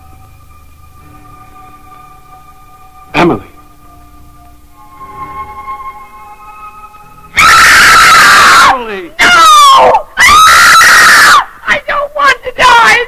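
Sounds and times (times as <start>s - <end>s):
woman screaming: 7.4s - 13.0s.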